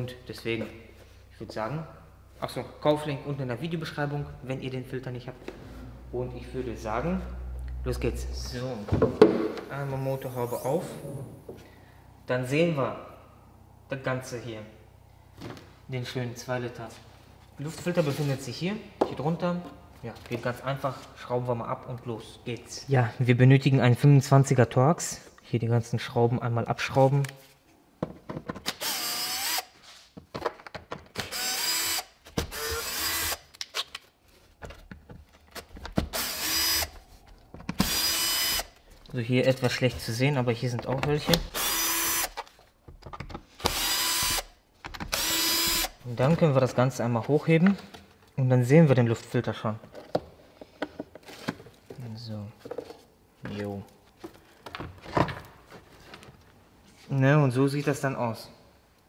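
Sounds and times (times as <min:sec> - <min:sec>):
cordless drill bursts: 0:28.7 - 0:29.8, 0:31.2 - 0:33.5, 0:36.1 - 0:37.0, 0:37.8 - 0:38.8, 0:41.5 - 0:42.4, 0:43.6 - 0:46.0.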